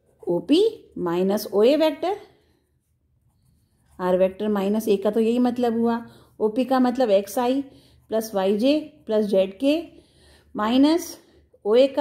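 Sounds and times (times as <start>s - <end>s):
pen scratching on paper: 0.0s - 9.9s
woman's voice: 0.2s - 2.4s, 3.9s - 12.0s.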